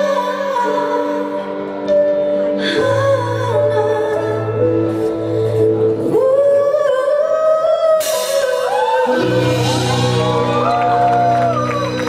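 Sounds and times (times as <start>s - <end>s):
woman singing: 0.0s - 10.7s
band accompaniment: 8.0s - 12.0s.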